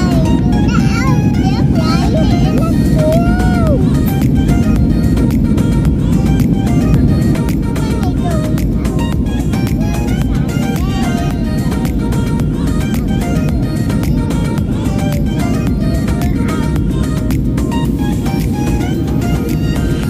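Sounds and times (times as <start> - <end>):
airliner cabin roar: 0.0 - 20.0
background music: 0.0 - 20.0.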